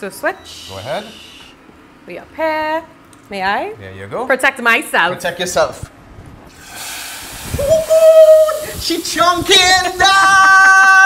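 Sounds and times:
hot oil sizzling in a pot: 6.5 - 9.2
person's long vocal exclamation: 7.6 - 8.8.

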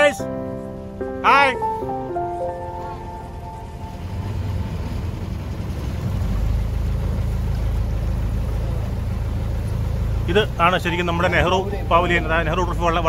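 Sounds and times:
boat motor rumbling: 0.0 - 13.0.

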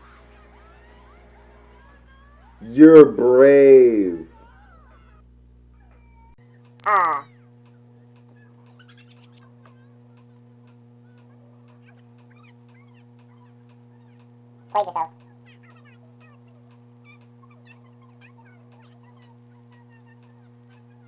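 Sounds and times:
low electrical hum: 0.0 - 21.0
high-pitched cries: 1.8 - 5.2, 5.8 - 7.5.

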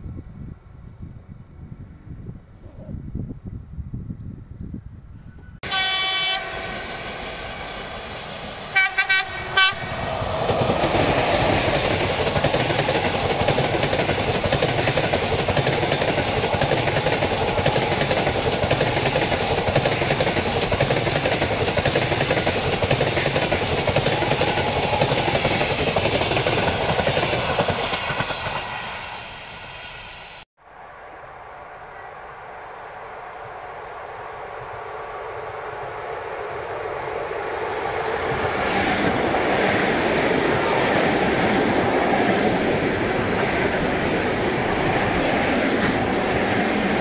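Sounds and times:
passing train rumble: 5.4 - 47.0
train horn blasts: 5.6 - 7.6, 8.7 - 10.1
train wheel noise: 5.6 - 30.4, 33.1 - 47.0.

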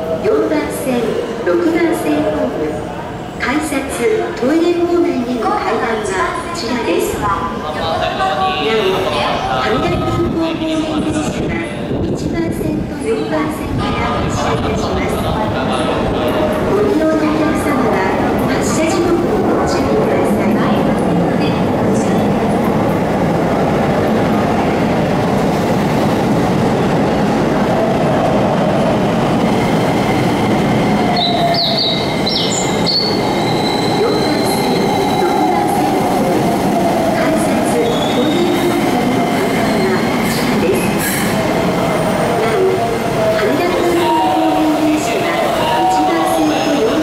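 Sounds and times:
electric train rumbling: 0.0 - 47.0
train brakes squealing: 31.2 - 35.6.

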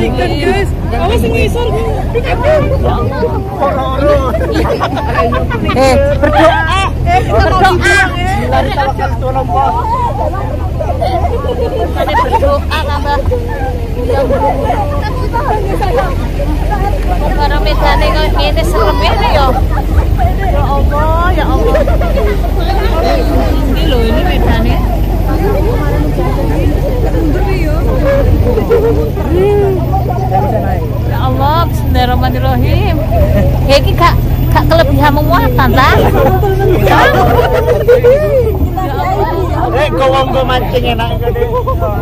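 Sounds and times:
chatter of many voices: 0.0 - 42.0
vehicle engine hum: 0.0 - 42.0.

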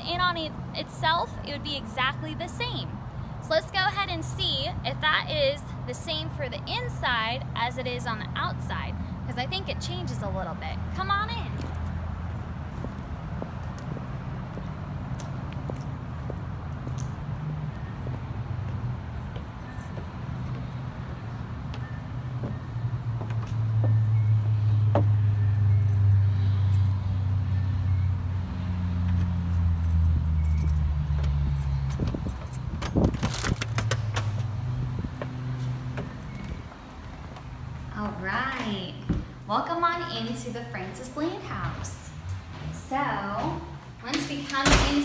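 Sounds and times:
vehicle engine rumble: 0.0 - 44.7
door opening clicks and knocks: 44.1 - 45.0.

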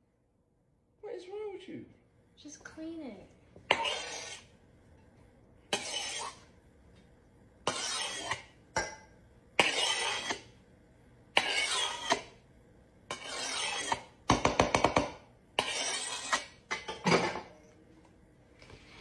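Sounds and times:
spatula scraping countertop: 3.7 - 4.5, 5.7 - 6.5, 7.6 - 8.6, 9.6 - 10.6, 11.4 - 12.4, 13.1 - 17.5.

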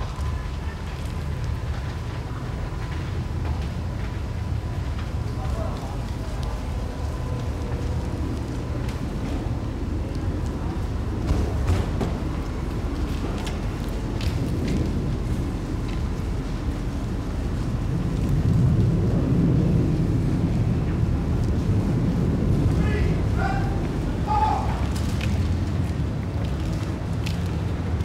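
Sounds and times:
steady low rumble: 0.0 - 28.0.

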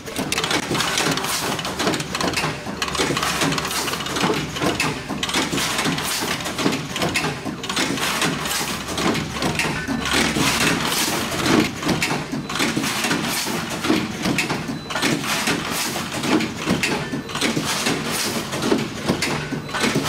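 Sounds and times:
machine clattering: 0.0 - 20.0
quick mechanical clicks and knocks: 0.0 - 20.0.

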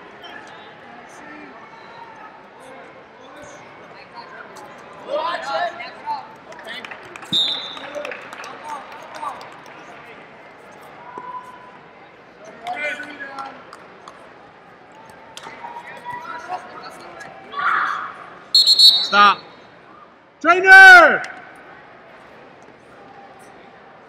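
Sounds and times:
referee's whistle: 7.3 - 7.9, 18.5 - 19.6.

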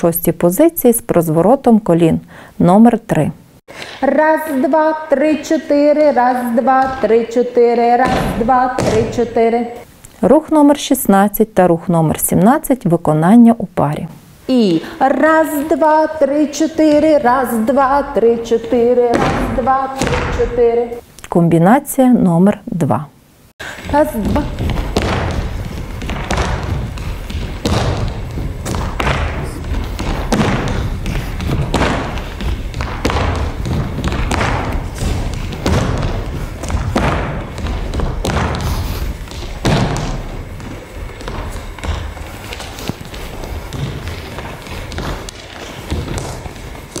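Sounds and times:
dancers stamping on stage floor: 6.6 - 9.4, 23.6 - 47.0.

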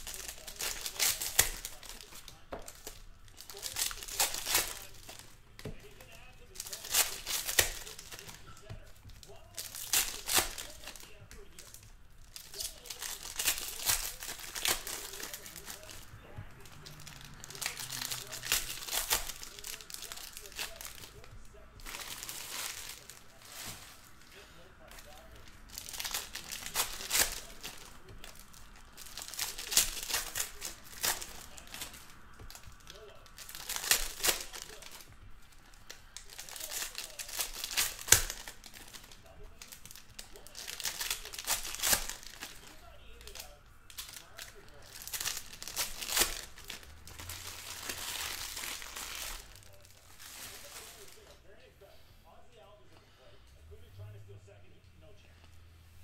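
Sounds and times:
foil wrappers crinkling and tearing: 0.0 - 51.6.

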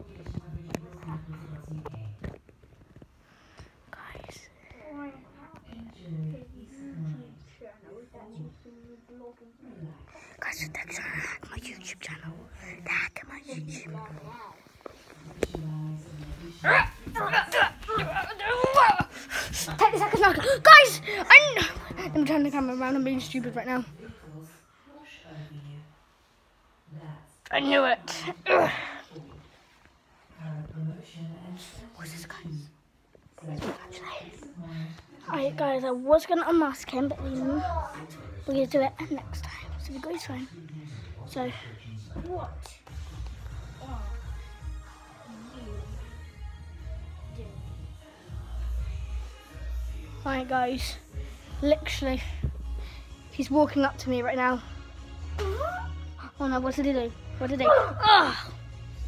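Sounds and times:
person whispering: 3.9 - 4.8, 10.1 - 15.5.

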